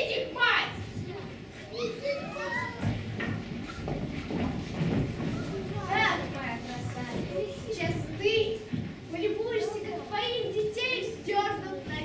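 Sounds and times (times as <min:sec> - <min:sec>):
children calling and talking: 0:00.0 - 0:12.0.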